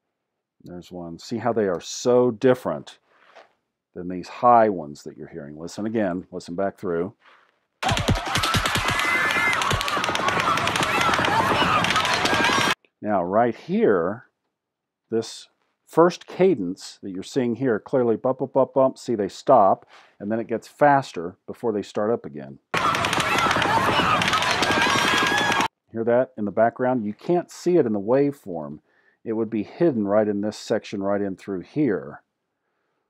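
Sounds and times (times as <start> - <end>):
crowd voices: 7.8 - 12.8, 22.8 - 25.7
people screaming and shouting: 7.8 - 12.8, 22.7 - 25.7
rapid rifle fire: 7.8 - 12.8, 22.8 - 25.7.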